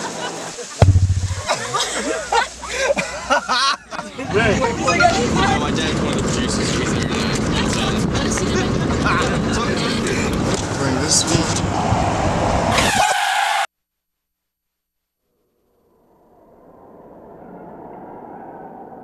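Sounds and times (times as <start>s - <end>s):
car and street noise: 0.8s - 13.6s.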